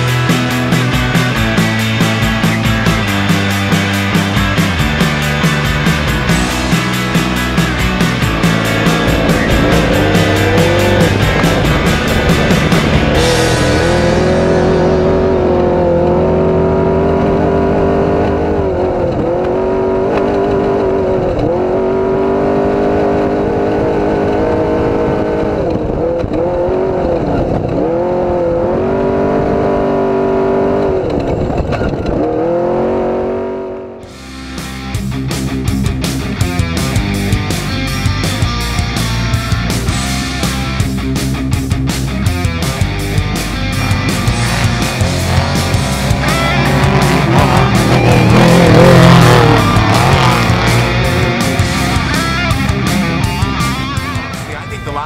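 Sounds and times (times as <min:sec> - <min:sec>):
rock music: 0:00.0 - 0:26.8, 0:30.4 - 0:55.0
truck engine revving: 0:00.0 - 0:55.0.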